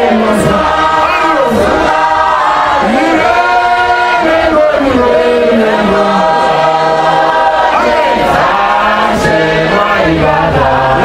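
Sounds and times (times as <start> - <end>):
congregation singing a hymn: 0.0 - 11.0
man singing through a microphone: 0.0 - 11.0.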